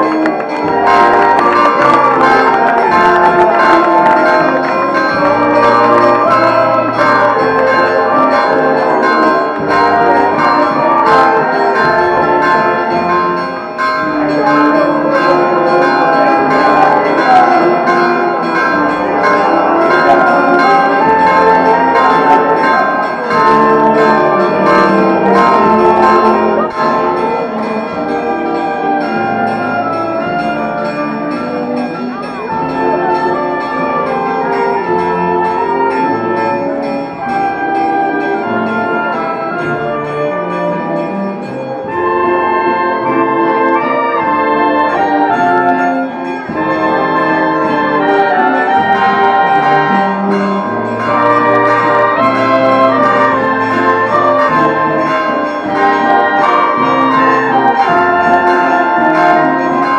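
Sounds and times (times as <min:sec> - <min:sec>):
church bells pealing: 0:00.0 - 0:59.9.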